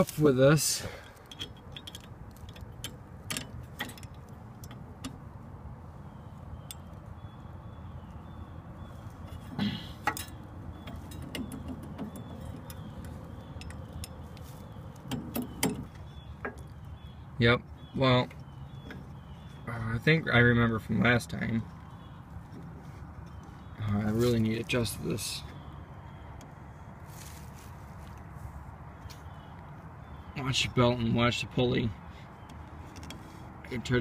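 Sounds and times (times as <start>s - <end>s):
small metal clicks and taps: 1.0s - 5.2s, 32.4s - 33.2s
knocks and handling noise: 9.1s - 16.8s, 32.4s - 33.5s.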